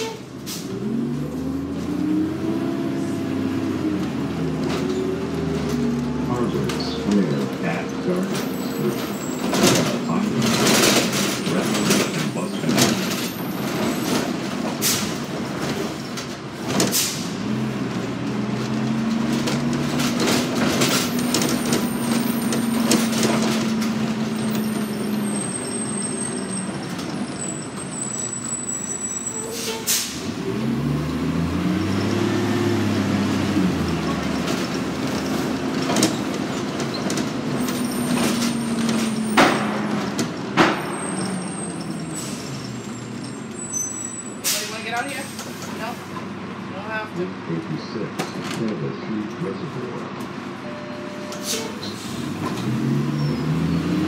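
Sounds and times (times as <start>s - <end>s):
bus diesel engine: 0.0s - 54.0s
air brake hisses: 16.9s - 17.3s, 29.4s - 30.2s, 51.4s - 52.3s.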